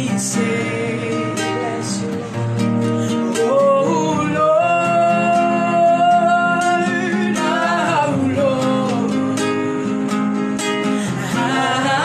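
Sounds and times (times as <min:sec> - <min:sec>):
woman singing: 0:00.0 - 0:02.4, 0:03.1 - 0:12.0
strummed classical guitar: 0:00.0 - 0:12.0.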